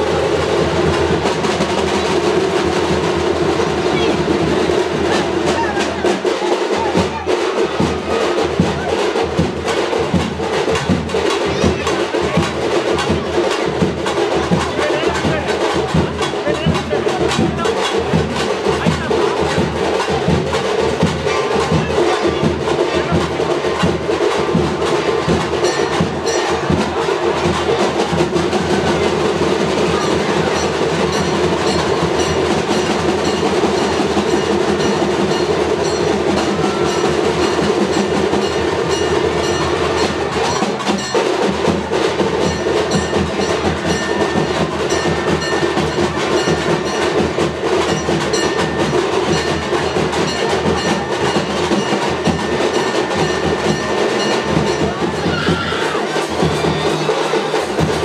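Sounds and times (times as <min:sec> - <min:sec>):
fast percussion music: 0:00.0 - 0:58.0.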